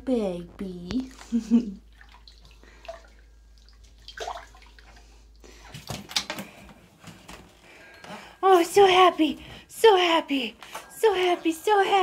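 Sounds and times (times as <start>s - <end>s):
bathwater sloshing and dripping: 0.9s - 7.8s
woman laughing: 1.2s - 1.9s.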